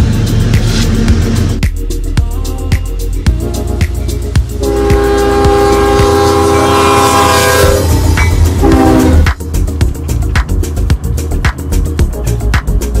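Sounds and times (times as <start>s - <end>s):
locomotive air horn: 4.6s - 9.4s.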